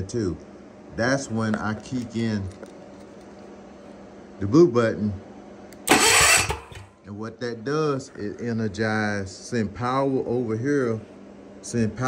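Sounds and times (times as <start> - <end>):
generator starter cranking: 5.8 - 6.9
starter solenoid click: 5.8 - 6.9.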